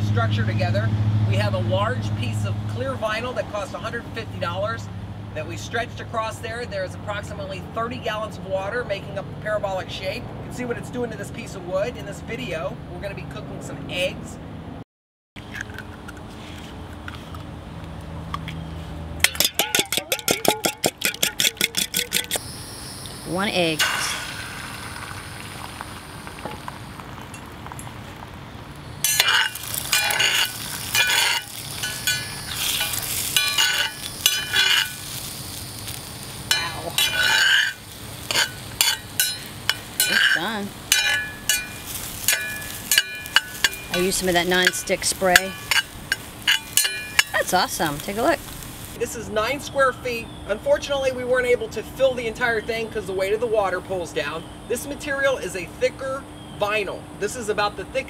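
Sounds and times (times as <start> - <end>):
whisk clinking in metal bowl: 19.2 - 22.4, 29.1 - 35.0, 36.5 - 47.4
metal spatula scraping skillet: 29.0 - 35.3, 36.5 - 48.2.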